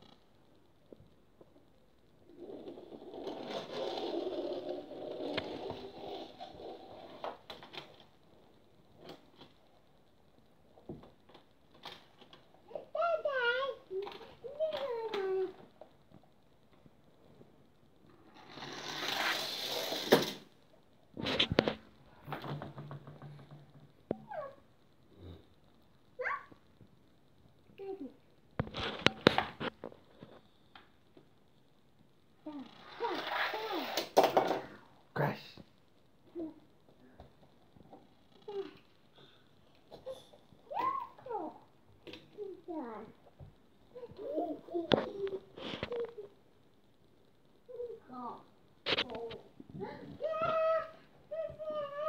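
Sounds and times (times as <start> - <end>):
toddler babbling: 49.8 - 52.0.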